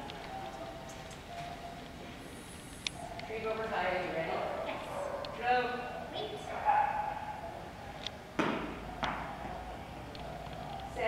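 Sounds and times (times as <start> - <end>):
faint voices in a hall: 3.0 - 11.0
sharp echoing thuds: 8.4 - 9.3.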